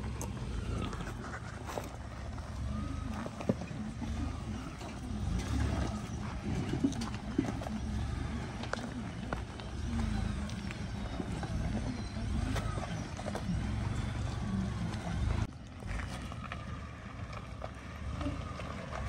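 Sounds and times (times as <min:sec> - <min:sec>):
stones clicking under tyres: 0:00.0 - 0:19.0
truck engine and tyre rumble: 0:00.0 - 0:19.0.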